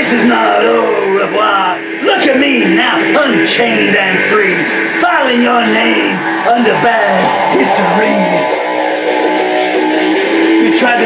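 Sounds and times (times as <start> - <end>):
electric guitar strumming chords: 0.0 - 11.0.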